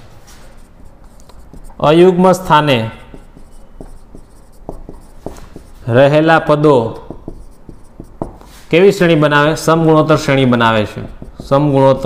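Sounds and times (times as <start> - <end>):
marker writing on whiteboard: 0.3 - 12.0.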